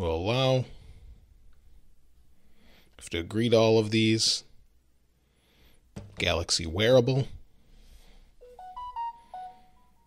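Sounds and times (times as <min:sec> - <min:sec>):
electronic notification chime: 0:08.4 - 0:10.0.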